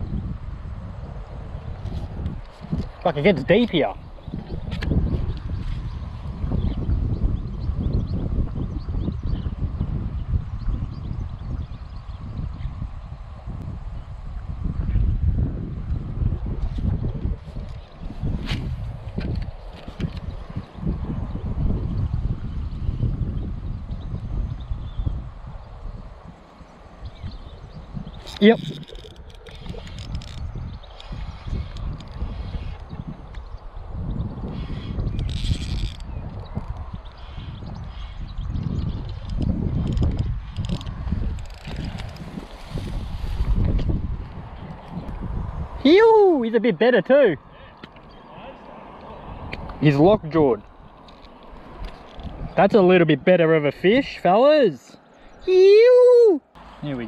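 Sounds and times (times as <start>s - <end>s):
wind buffeting microphone: 0.0s - 57.0s
light rustles: 39.1s - 45.2s.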